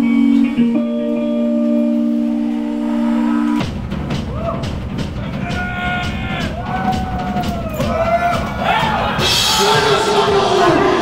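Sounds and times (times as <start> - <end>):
electric guitars sustained chord: 0.0 - 3.6
crowd cheering and yelling: 2.2 - 11.0.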